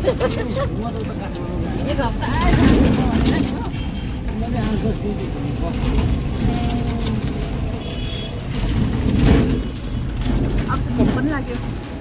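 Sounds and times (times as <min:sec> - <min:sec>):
rickshaw rumbling in motion: 0:00.0 - 0:12.0.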